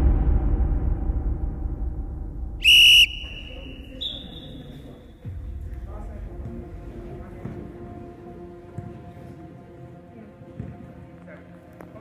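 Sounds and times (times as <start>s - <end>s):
referee whistle blast: 2.6s - 4.8s.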